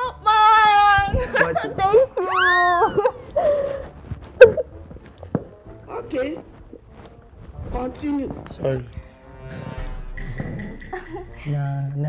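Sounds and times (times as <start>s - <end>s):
woman squealing: 2.1s - 3.8s
woman giggling: 4.4s - 4.8s.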